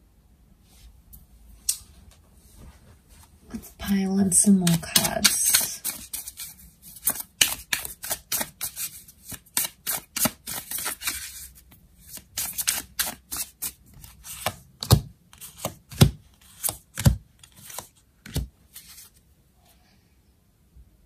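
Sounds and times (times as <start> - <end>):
cards being shuffled: 4.6 - 19.2.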